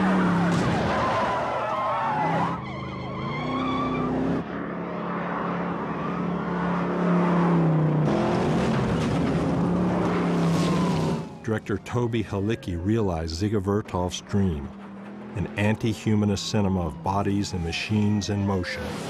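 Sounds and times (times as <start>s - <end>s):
car engines revving: 0.0s - 19.0s
tires squealing: 0.0s - 19.0s.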